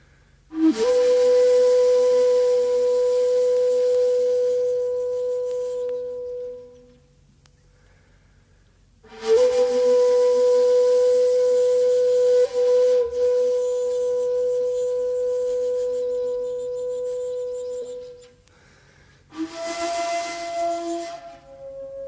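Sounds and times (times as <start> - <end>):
breathy bamboo flute notes: 0.0 - 22.0.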